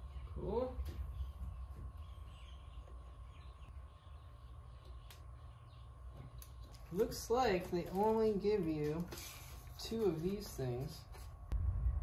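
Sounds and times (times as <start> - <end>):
low hum: 11.0 - 12.0.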